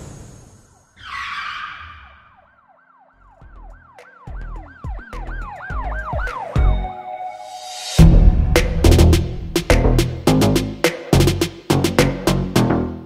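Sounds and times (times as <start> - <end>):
siren-like wail: 0.8 - 7.6
whoosh: 7.5 - 10.3
bass hits: 8.0 - 12.8.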